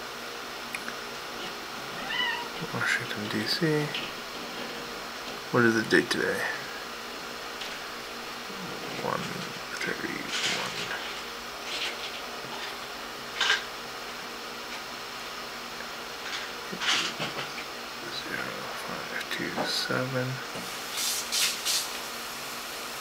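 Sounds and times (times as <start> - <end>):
steady background hiss: 0.0 - 23.0
faint mumbling: 8.4 - 11.0.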